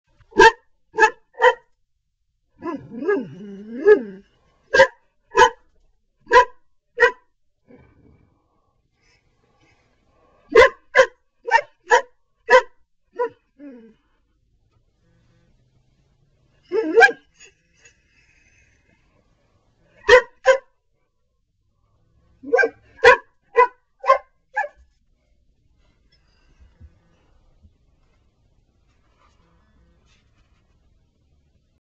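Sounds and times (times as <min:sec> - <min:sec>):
dog barking: 0:00.3 - 0:01.7, 0:04.7 - 0:05.6, 0:06.2 - 0:07.2, 0:10.4 - 0:13.8, 0:16.7 - 0:17.5, 0:20.0 - 0:20.7, 0:22.4 - 0:24.8.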